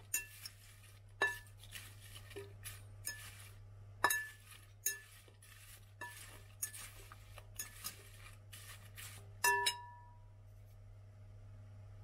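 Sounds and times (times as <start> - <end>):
fruit rustling in bowl: 0.0 - 9.6
fork clinking against glass: 3.0 - 3.4, 4.0 - 5.2, 7.6 - 8.1, 9.4 - 9.9.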